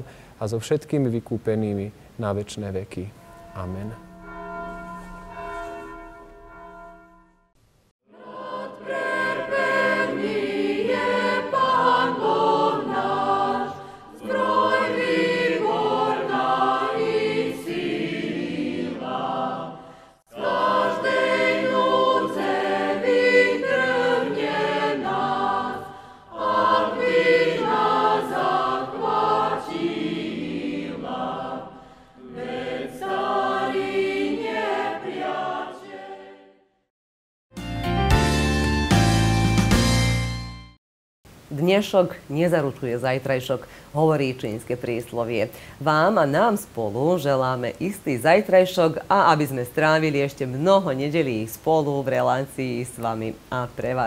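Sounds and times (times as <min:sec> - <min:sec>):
choir singing a hymn: 0:08.1 - 0:36.6.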